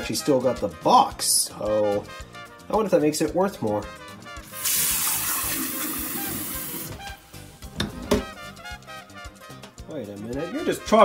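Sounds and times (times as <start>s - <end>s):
background music: 0.0s - 11.0s
tap water filling a glass pitcher: 4.5s - 7.0s.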